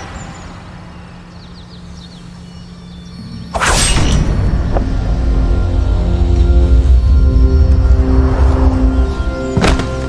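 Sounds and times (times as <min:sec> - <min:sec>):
low outdoor hum: 0:00.0 - 0:10.0.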